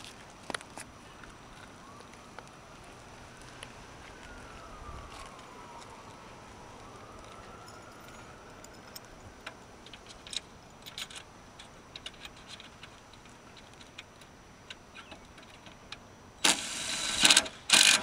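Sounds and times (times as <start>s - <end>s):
light metallic clicks and ticks: 7.7s - 16.0s
cordless power driver running: 16.4s - 18.0s.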